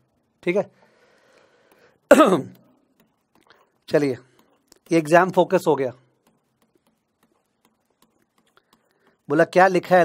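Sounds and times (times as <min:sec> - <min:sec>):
person speaking: 0:02.0 - 0:10.0
man clearing throat: 0:02.1 - 0:02.6.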